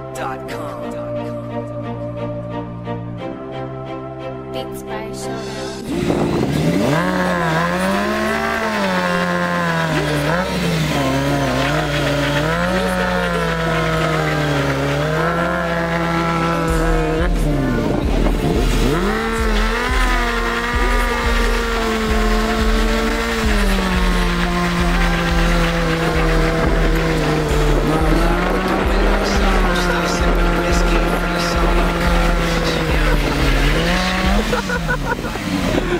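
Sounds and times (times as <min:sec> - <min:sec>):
motorcycle engine revving: 0:05.4 - 0:35.9.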